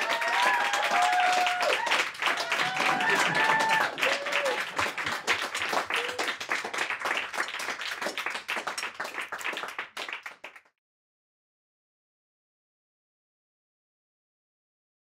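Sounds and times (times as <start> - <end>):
cheering shouts: 0.0 - 4.9, 5.8 - 6.3
audience applauding: 0.0 - 10.7.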